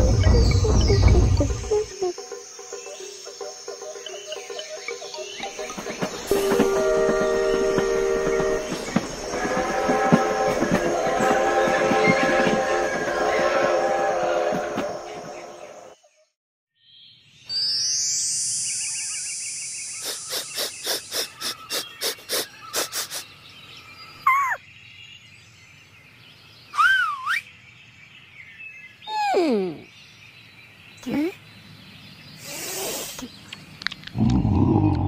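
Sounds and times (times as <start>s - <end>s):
music: 0.0s - 16.0s
high chirping bird calls: 18.7s - 24.7s, 26.6s - 27.6s, 28.2s - 30.0s.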